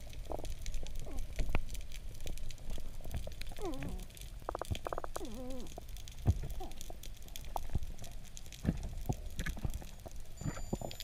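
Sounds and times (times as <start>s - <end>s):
underwater clicks: 0.0s - 10.8s.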